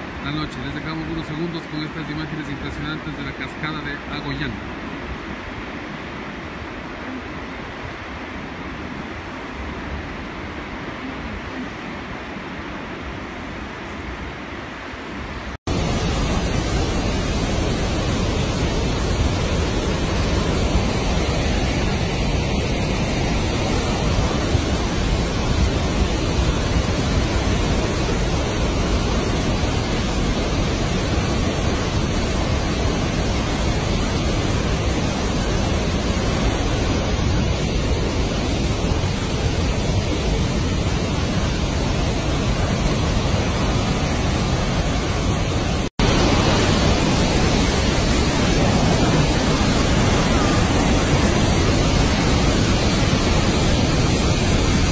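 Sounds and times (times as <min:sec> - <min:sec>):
river pouring over weir: 0:00.0 - 0:54.9
waterfall rushing: 0:00.0 - 0:54.9.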